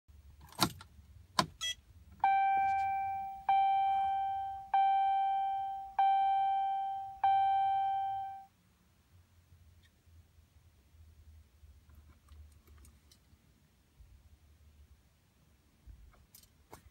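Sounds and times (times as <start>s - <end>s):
dashboard warning chime dings: 1.6s - 8.5s.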